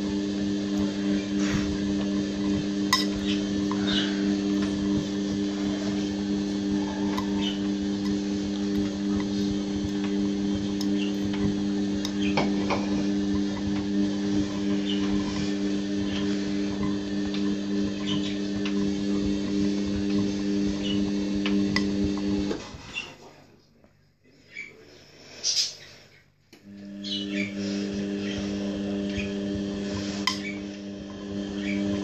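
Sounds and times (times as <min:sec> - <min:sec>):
washing machine drum motor humming: 0:00.0 - 0:23.1, 0:26.6 - 0:32.0.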